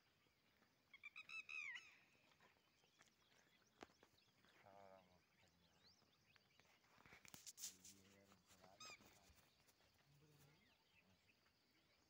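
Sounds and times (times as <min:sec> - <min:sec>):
bird calling: 0:00.9 - 0:05.1, 0:08.6 - 0:09.6.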